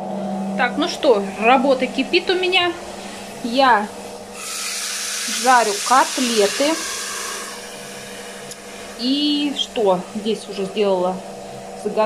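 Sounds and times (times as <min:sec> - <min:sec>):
meat sizzling in oil: 0:04.4 - 0:07.8.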